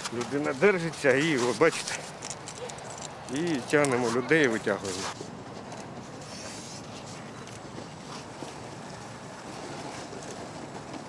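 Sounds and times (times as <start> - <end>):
man speaking: 3.3 - 5.2.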